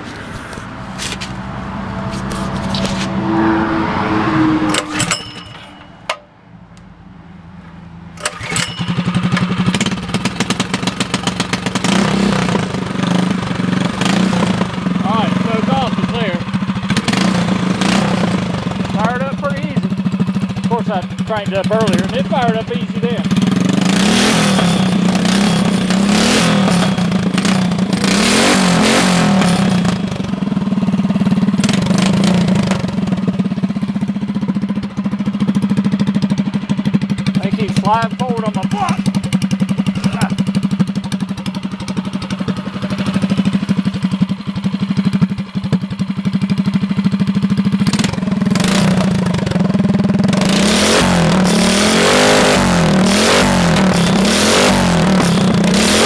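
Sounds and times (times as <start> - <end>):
small engine revving: 8.2 - 19.8, 20.6 - 30.3, 31.6 - 33.2, 47.8 - 56.0.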